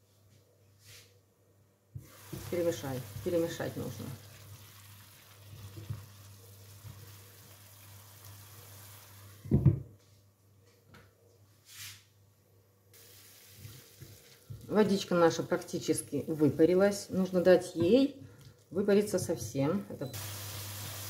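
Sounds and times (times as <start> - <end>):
vegetables sizzling in a pan: 2.0 - 9.6, 13.0 - 15.1, 20.2 - 21.0.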